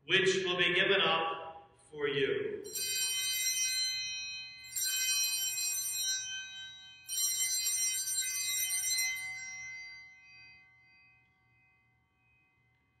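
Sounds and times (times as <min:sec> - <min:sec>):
small altar bells ringing: 0:02.6 - 0:13.0.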